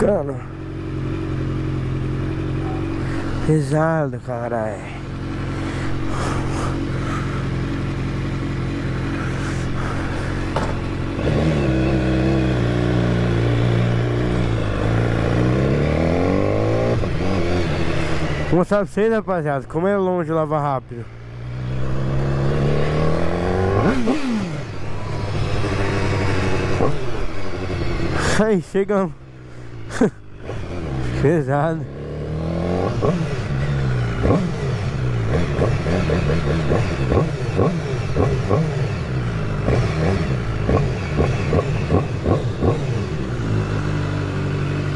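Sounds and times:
motorcycle engine idling: 0.0s - 15.6s, 24.7s - 32.5s
motorcycle accelerating away: 5.2s - 18.5s, 21.2s - 28.4s, 29.8s - 44.9s.

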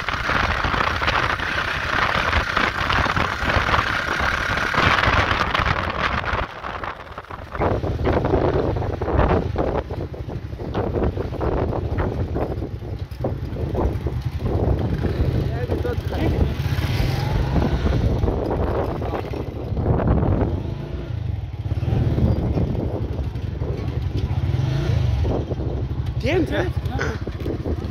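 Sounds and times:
motorcycle engines idling: 0.0s - 20.4s, 21.2s - 27.9s
people talking indistinctly: 26.2s - 27.3s.

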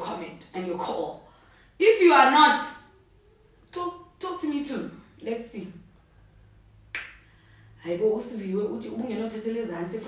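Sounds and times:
woman's voice: 0.0s - 3.0s, 3.7s - 5.9s, 7.8s - 10.0s
faint low hum: 0.0s - 10.0s.

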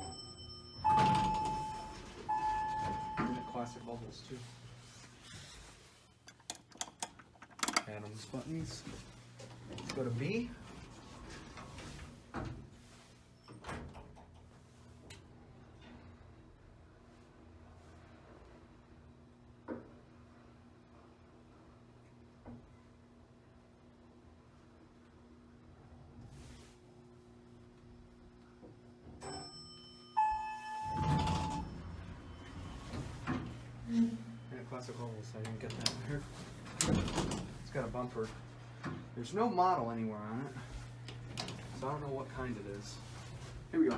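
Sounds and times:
single chime: 0.0s - 3.9s
elevator low hum: 0.0s - 6.0s, 8.0s - 43.9s
elevator door sliding shut: 0.8s - 3.6s, 30.8s - 33.7s, 36.6s - 37.6s.

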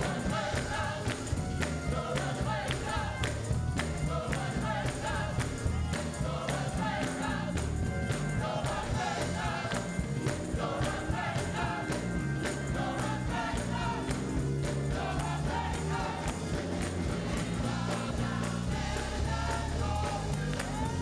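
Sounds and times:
gospel choir singing: 0.0s - 21.0s
hand-clapping on a beat: 0.0s - 21.0s
live band playing: 0.0s - 21.0s.

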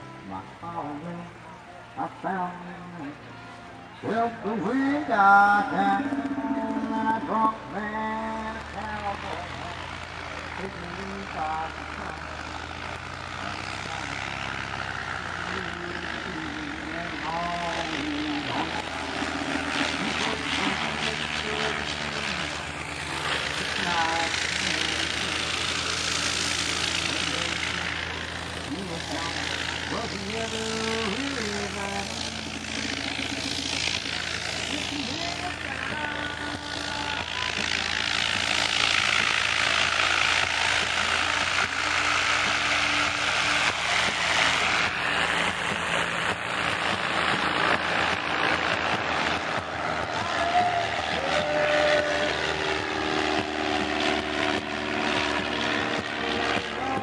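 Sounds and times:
propeller airplane engine running: 0.0s - 57.0s
people talking: 4.0s - 9.8s, 13.4s - 14.2s, 15.5s - 19.0s, 19.9s - 22.6s, 23.6s - 25.5s, 27.1s - 27.9s, 28.7s - 32.2s, 34.7s - 38.4s, 50.0s - 52.5s, 56.6s - 57.0s.

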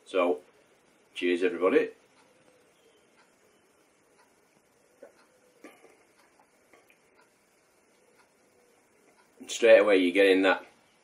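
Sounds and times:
man sipping and swallowing: 5.0s - 7.0s.

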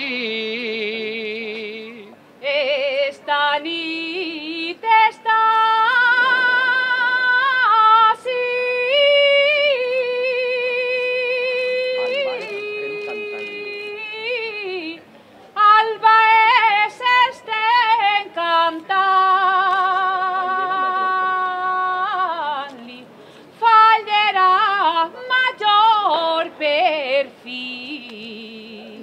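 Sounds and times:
person singing with vibrato: 0.0s - 15.0s.

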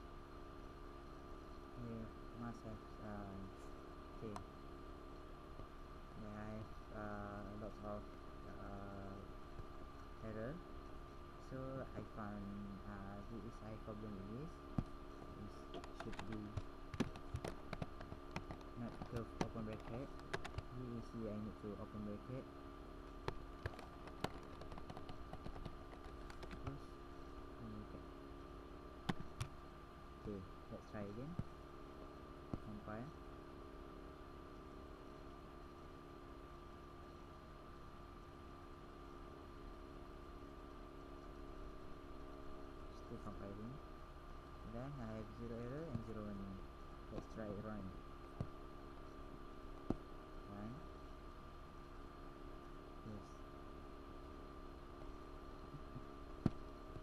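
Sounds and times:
faint electrical hum: 0.0s - 57.0s
computer keyboard key clicks: 15.8s - 20.7s, 23.2s - 26.8s.

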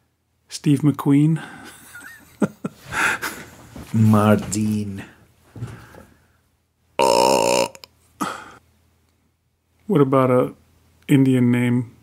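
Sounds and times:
man burping: 7.0s - 8.6s.

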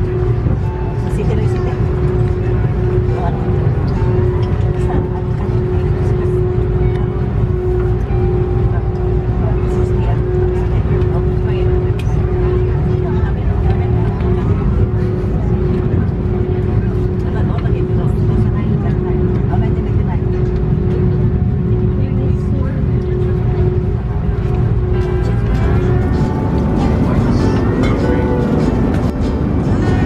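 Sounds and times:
airliner cabin rumble: 0.0s - 30.0s
constant cabin hum: 0.0s - 30.0s.

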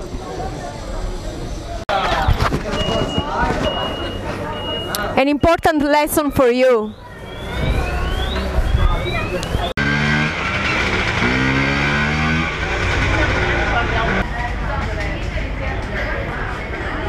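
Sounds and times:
chatter of shoppers and vendors: 0.0s - 11.7s, 12.3s - 17.0s
engine passing close: 7.2s - 14.3s.

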